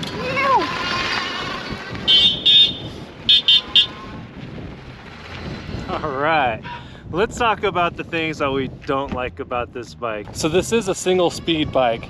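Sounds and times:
wind noise: 0:00.0 - 0:12.0
electric bike horn beeps: 0:02.0 - 0:04.2.

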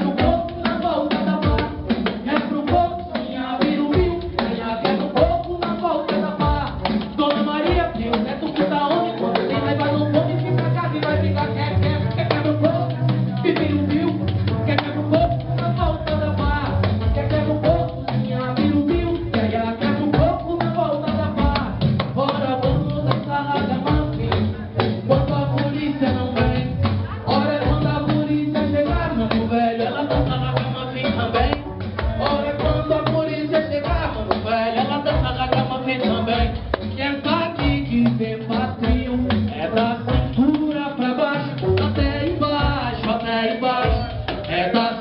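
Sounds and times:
drum and percussion beat: 0:00.0 - 0:45.0
live band music: 0:00.0 - 0:45.0.

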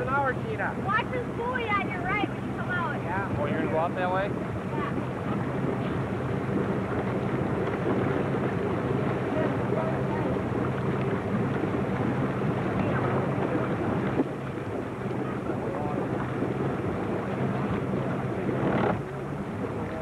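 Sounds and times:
motorboat engine idling: 0:00.0 - 0:20.0.

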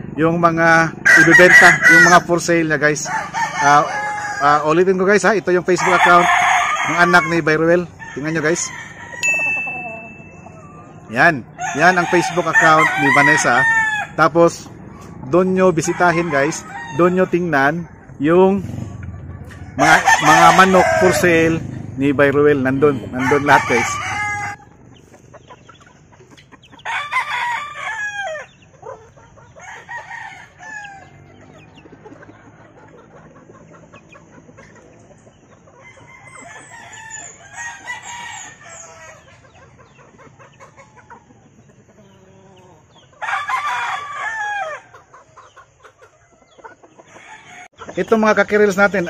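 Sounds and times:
roosters crowing: 0:00.0 - 0:49.0
young cockerels clucking: 0:00.0 - 0:49.0.

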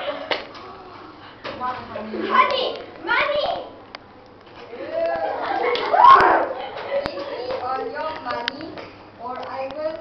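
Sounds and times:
girls talking: 0:00.0 - 0:03.9, 0:04.7 - 0:10.0.

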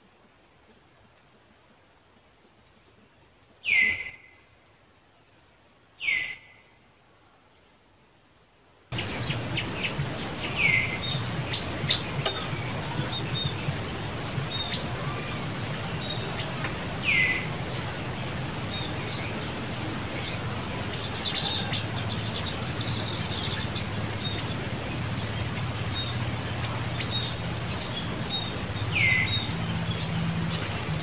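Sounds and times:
bird whistled call: 0:03.6 - 0:04.4, 0:06.0 - 0:06.6.

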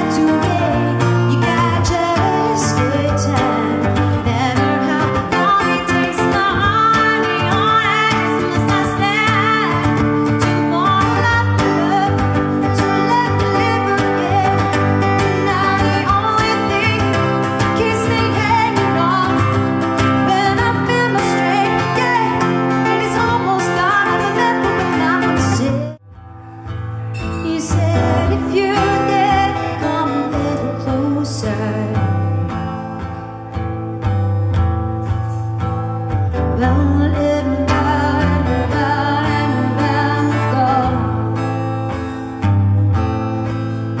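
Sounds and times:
woman singing into microphone: 0:00.0 - 0:26.0, 0:27.2 - 0:33.2, 0:36.4 - 0:42.1
electric guitar: 0:00.0 - 0:44.0.

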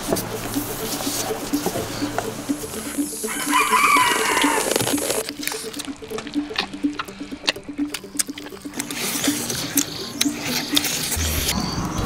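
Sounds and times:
rooster crowing: 0:03.2 - 0:05.2.

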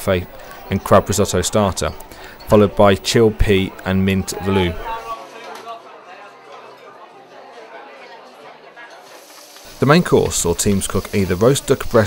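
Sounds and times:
low chatter: 0:00.0 - 0:12.0
meat sizzling in frying pans: 0:09.0 - 0:12.0.

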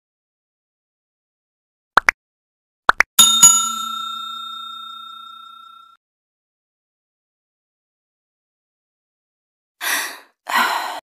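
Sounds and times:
bell ding: 0:03.2 - 0:06.0.

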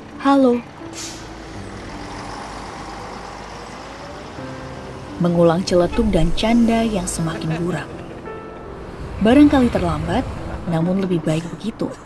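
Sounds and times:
bus and street traffic: 0:00.0 - 0:12.0
soft piano music: 0:00.0 - 0:12.0
air brakes hissing: 0:00.9 - 0:01.4.

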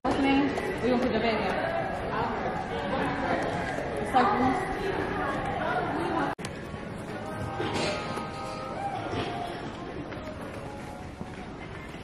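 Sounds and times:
indistinct chatter of voices: 0:00.0 - 0:12.0.

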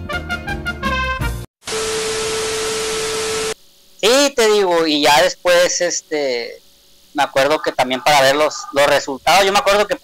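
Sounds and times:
television static hiss: 0:01.6 - 0:10.0
steady tone: 0:07.1 - 0:09.7.

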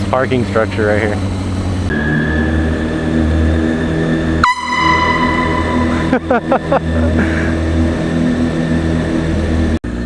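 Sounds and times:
motorcycle engine running: 0:00.0 - 0:10.0
air horn blast: 0:04.4 - 0:07.0.

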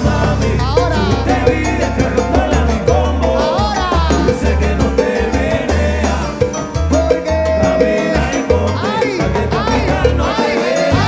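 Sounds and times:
live salsa band: 0:00.0 - 0:11.0.

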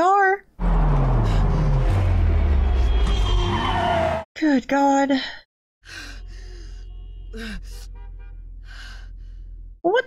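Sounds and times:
low droning rumble: 0:00.6 - 0:03.8.

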